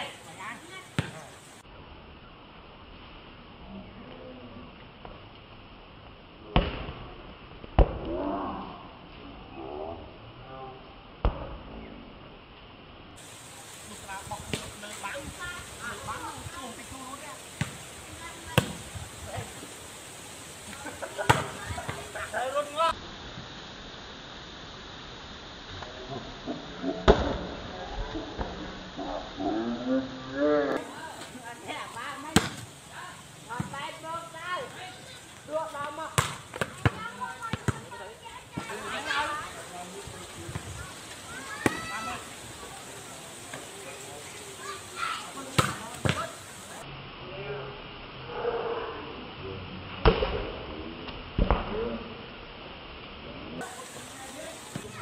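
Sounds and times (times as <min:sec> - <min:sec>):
volleyball struck by hand: 0:45.6 - 0:46.2.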